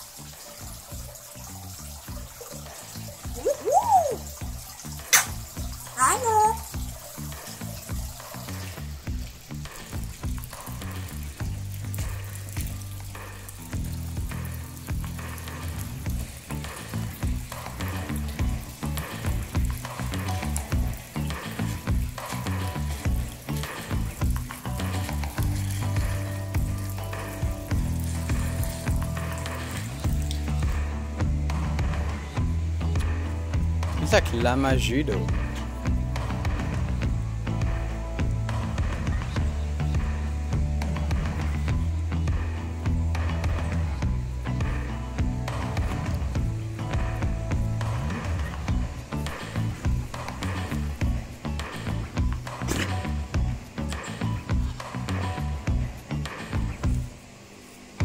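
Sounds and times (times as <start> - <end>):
background music with bass: 0.0 - 57.4
parrot whistling: 3.4 - 4.3
sharp click: 5.1 - 5.4
steady hiss: 34.5 - 58.0.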